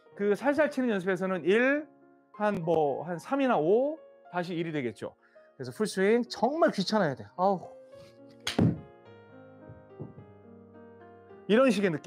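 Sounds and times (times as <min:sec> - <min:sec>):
background keyboard music: 0:00.0 - 0:12.0
golf club striking ball: 0:08.4 - 0:08.8.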